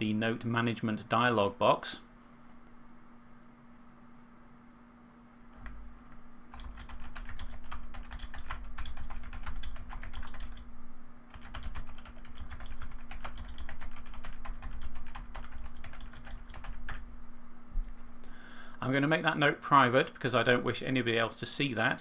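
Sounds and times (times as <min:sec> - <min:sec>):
steady low hum: 0:00.0 - 0:22.0
typing on computer keyboard: 0:06.5 - 0:10.6, 0:11.3 - 0:17.0.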